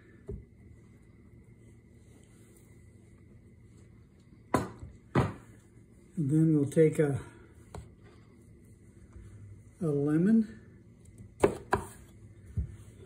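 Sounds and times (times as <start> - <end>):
faint steady high hum: 0.0 - 13.0
person speaking: 9.7 - 10.7.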